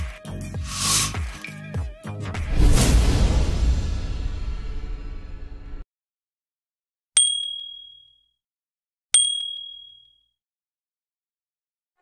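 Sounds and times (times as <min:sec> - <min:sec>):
bright high ding: 0:09.2 - 0:10.2.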